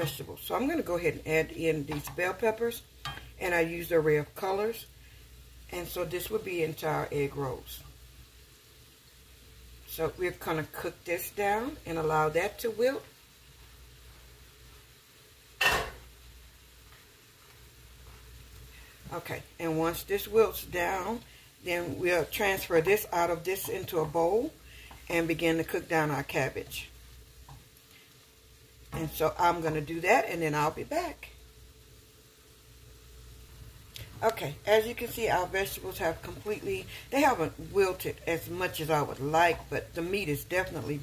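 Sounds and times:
faint steady hiss: 0.0 - 41.0
food sizzling in a skillet: 0.0 - 41.0.

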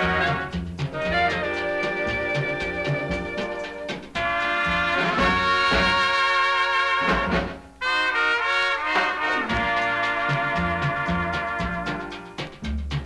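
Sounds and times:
dance orchestra playing: 0.0 - 12.9.

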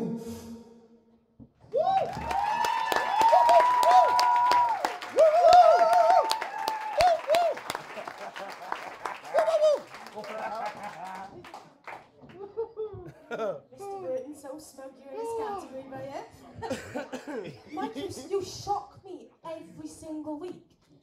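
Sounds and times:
audience cheering and whooping: 1.7 - 11.4
audience clapping: 1.7 - 12.6.

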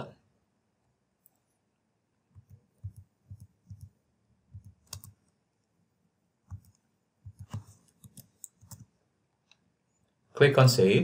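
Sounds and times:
computer keyboard typing: 2.4 - 5.3, 6.5 - 8.9.

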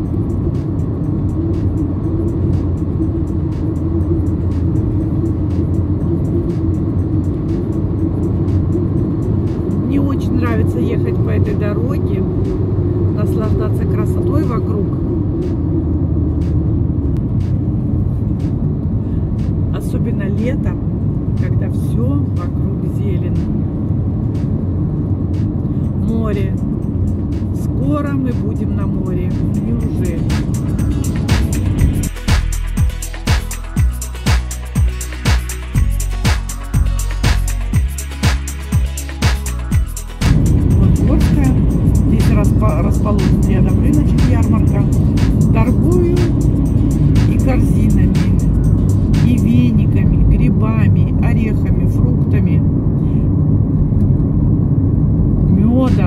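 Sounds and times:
car road and engine noise: 0.0 - 56.0.

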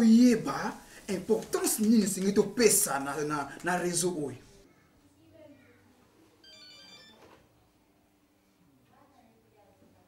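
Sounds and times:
phone ringtone: 6.4 - 7.4.

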